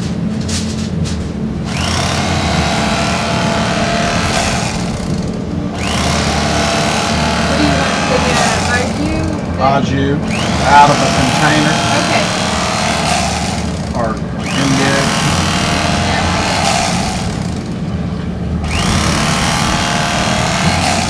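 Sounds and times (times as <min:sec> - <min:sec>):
electric carving knife motor buzz: 0:01.6 - 0:09.1, 0:10.3 - 0:17.8, 0:18.6 - 0:21.0
voices: 0:07.3 - 0:12.7, 0:13.9 - 0:16.9.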